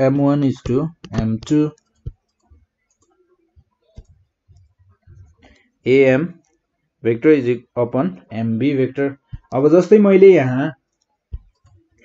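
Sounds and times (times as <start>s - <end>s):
stylus clicking on tablet: 0.5s - 5.8s, 10.8s - 12.0s.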